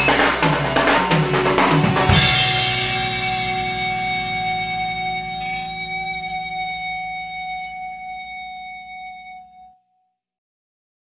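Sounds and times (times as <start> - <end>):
rock chord on guitars and bass: 0.0 - 9.2.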